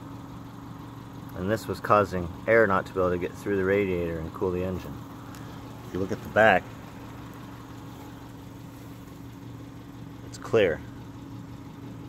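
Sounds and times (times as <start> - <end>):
engine humming steadily: 0.0 - 12.0.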